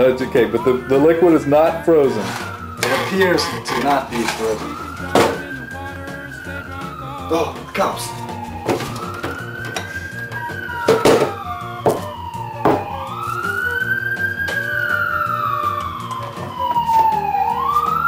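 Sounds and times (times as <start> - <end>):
siren wailing: 0.0 - 18.0
glass bottles knocking on counter: 10.9 - 12.0.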